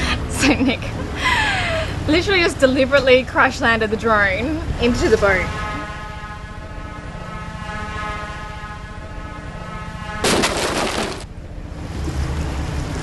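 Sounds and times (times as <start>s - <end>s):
loud clattering crash: 10.2s - 11.3s.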